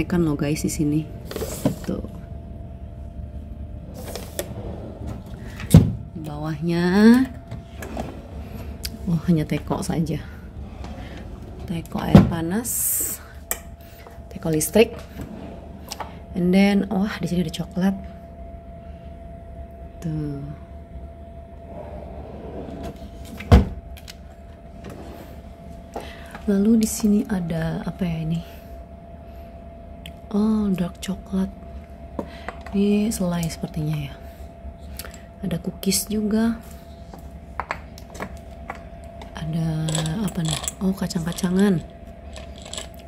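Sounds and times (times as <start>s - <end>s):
faint hum: 0.0s - 43.0s
wooden drawer scraping and creaking: 7.6s - 8.7s, 21.7s - 23.0s.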